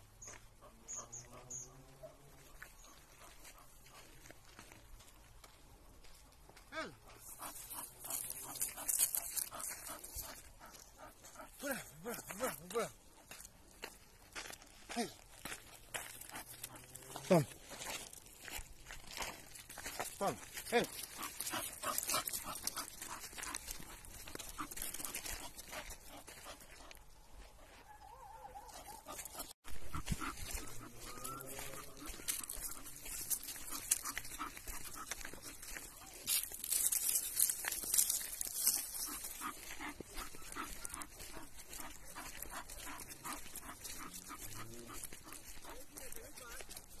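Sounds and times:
footsteps crunching on gravel: 0:00.2 - 0:27.9, 0:28.6 - 0:47.0
dog panting: 0:07.0 - 0:13.5, 0:15.5 - 0:18.0, 0:19.1 - 0:27.8, 0:28.6 - 0:47.0
person speaking: 0:11.4 - 0:13.0, 0:16.8 - 0:17.6, 0:20.1 - 0:21.2, 0:30.1 - 0:34.2.

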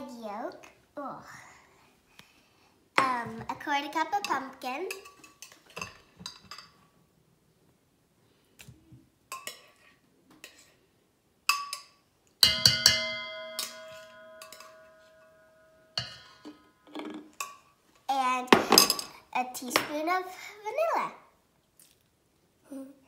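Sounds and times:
utensils clinking on steel bowl: 0:04.2 - 0:06.8, 0:11.5 - 0:17.7, 0:18.5 - 0:19.9
bowl ringing tone: 0:12.4 - 0:16.5.

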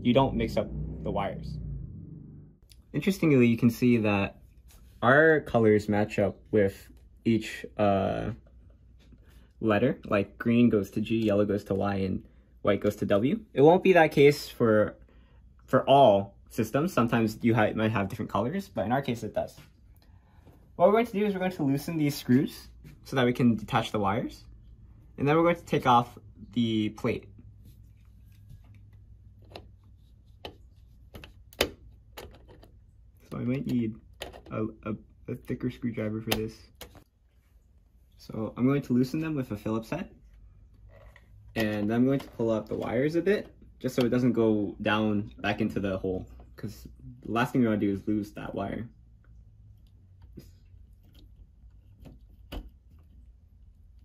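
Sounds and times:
low steady hum: 0:00.0 - 0:54.0.

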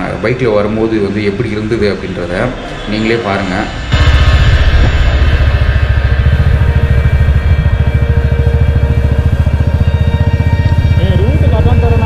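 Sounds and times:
motorcycle engine running: 0:03.9 - 0:12.0.

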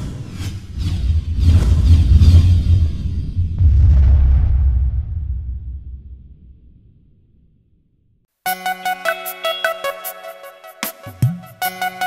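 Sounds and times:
deep low rumble: 0:00.8 - 0:08.2.

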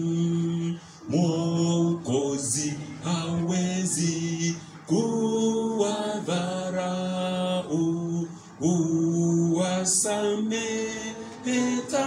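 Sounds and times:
man singing worship song: 0:00.0 - 0:12.0.

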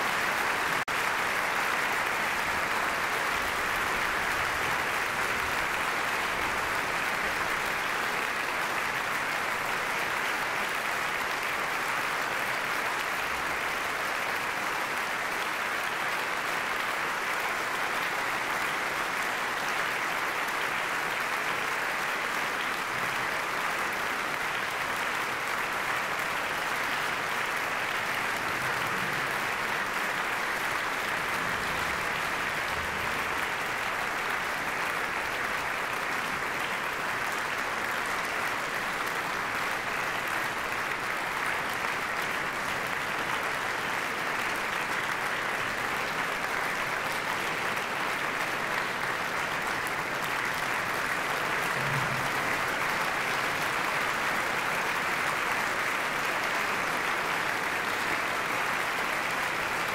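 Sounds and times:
audience applauding: 0:00.0 - 0:59.9.

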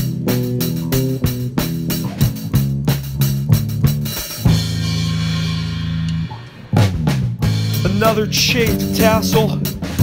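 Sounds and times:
drum hits: 0:00.0 - 0:10.0
instrumental band music: 0:00.0 - 0:10.0.

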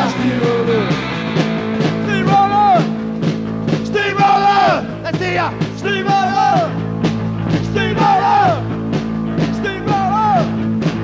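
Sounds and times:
person singing: 0:00.0 - 0:01.0
drums at steady beat: 0:00.0 - 0:11.0
electric guitar: 0:00.0 - 0:11.0.

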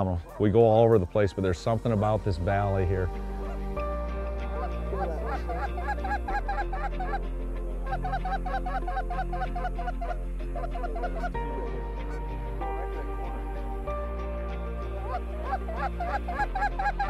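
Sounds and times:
background music with low notes: 0:00.0 - 0:17.0
geese honking: 0:02.6 - 0:13.9, 0:14.8 - 0:17.0.

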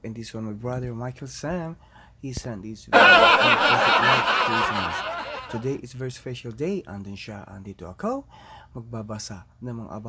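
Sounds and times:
people laughing: 0:03.0 - 0:05.8.

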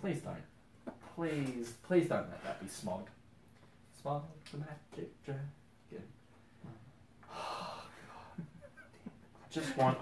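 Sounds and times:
person gasping: 0:07.2 - 0:08.5.

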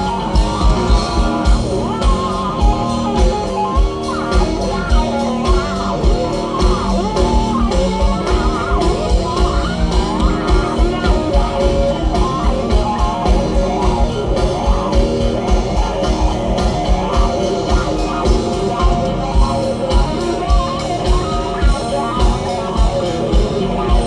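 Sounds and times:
bass guitar: 0:00.0 - 0:24.0
drum kit beat: 0:00.0 - 0:24.0
electric guitar: 0:00.0 - 0:24.0.

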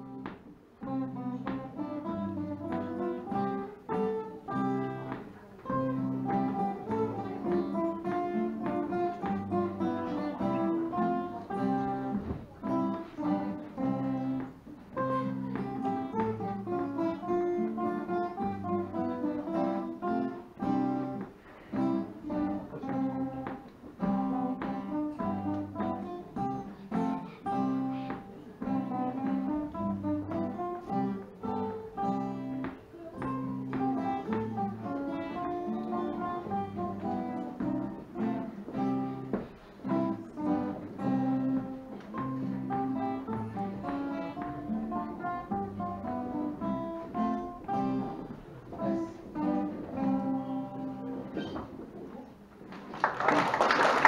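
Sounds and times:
acoustic guitars playing: 0:00.0 - 0:52.5.

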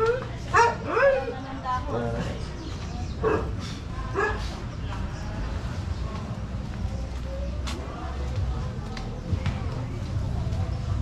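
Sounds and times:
dog barking: 0:00.1 - 0:01.4, 0:03.2 - 0:04.6.

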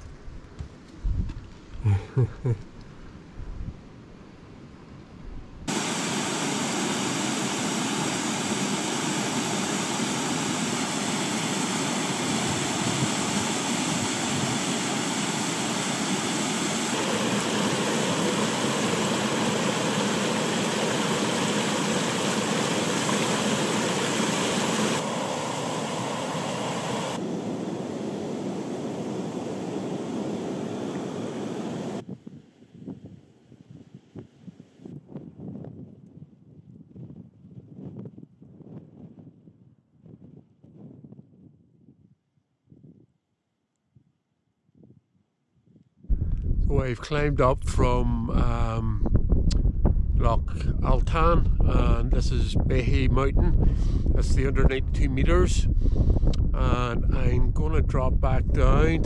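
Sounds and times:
gusty wind: 0:00.0 - 0:01.9, 0:02.6 - 0:43.2, 0:44.7 - 0:59.0.

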